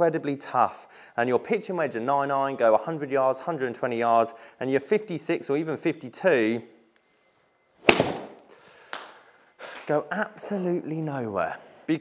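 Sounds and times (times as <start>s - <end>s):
golf club striking ball: 7.8s - 8.5s.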